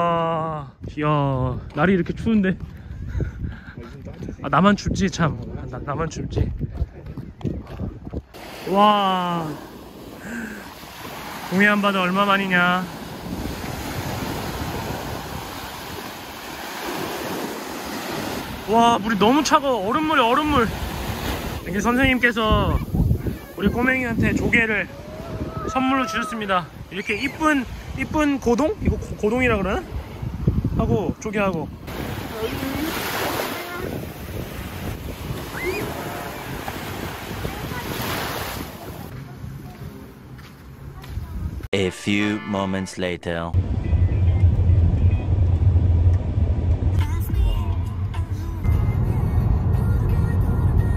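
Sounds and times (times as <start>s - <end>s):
wind on microphone: 0.7s - 8.6s, 12.9s - 19.3s, 20.4s - 40.0s, 41.0s - 41.7s
small waves breaking on beach: 8.3s - 40.1s.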